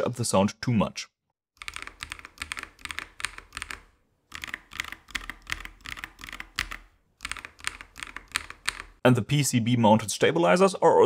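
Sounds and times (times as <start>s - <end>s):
mechanical keyboard typing: 1.6s - 9.0s.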